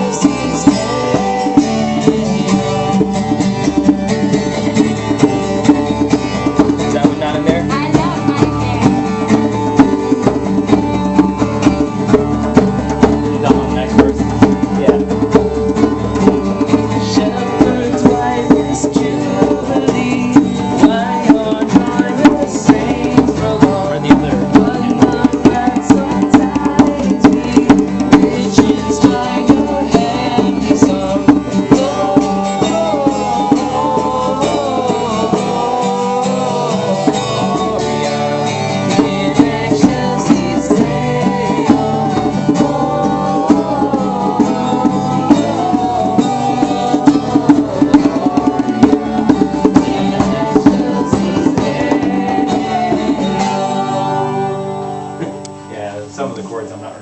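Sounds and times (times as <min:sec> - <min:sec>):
person singing a carol: 0:00.0 - 0:03.4, 0:06.6 - 0:09.8, 0:16.6 - 0:55.5
acoustic guitar strumming: 0:00.0 - 0:57.0.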